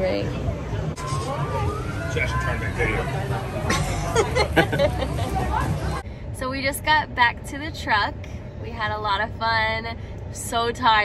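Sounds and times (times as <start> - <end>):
crowd chatter: 0.0 - 6.0
distant siren rising: 0.2 - 6.0.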